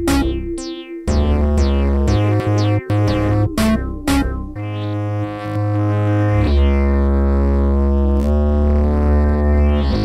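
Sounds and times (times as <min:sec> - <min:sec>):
deep steady bass: 0:00.0 - 0:10.0
sustained synthesizer chords: 0:00.0 - 0:10.0.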